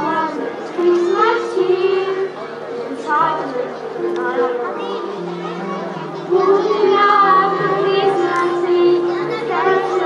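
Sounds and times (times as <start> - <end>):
children singing in unison: 0.0 - 10.0
instrumental accompaniment: 0.0 - 10.0.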